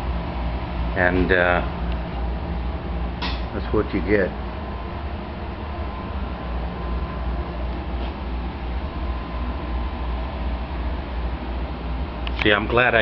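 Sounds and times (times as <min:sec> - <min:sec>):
blower fan rushing hum: 0:00.0 - 0:13.0.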